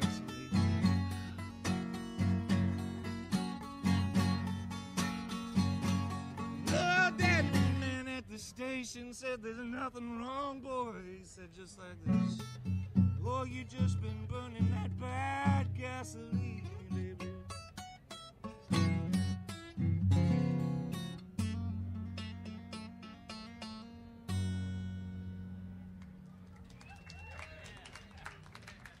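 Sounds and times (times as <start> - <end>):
acoustic guitar playing blues: 0.0 - 26.2.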